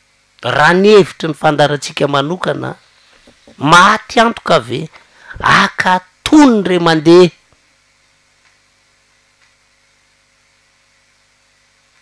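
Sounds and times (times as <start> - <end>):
faint electrical hum and hiss: 0.0 - 12.0
tiny ticks: 8.4 - 8.6, 9.3 - 9.6.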